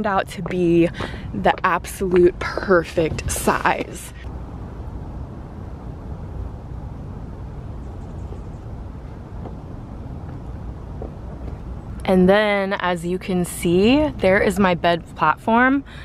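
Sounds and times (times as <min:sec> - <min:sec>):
low outdoor background rumble: 0:00.0 - 0:16.0.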